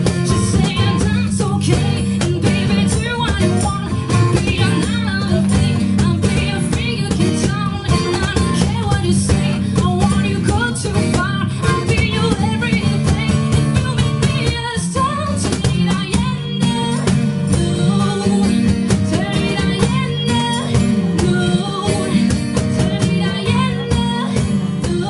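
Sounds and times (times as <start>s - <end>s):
acoustic guitars: 0.0s - 25.0s
cajon beat: 0.0s - 25.0s
woman singing: 0.0s - 25.0s.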